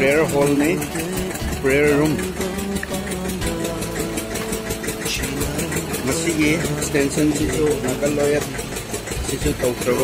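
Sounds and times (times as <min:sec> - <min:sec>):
mechanical drone with fast pulse: 0:00.0 - 0:10.0
steady tones: 0:00.0 - 0:10.0.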